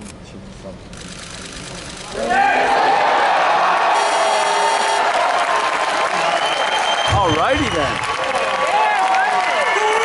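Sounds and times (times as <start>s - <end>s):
arena crowd voices: 2.1s - 10.0s
crowd cheering: 2.1s - 10.0s.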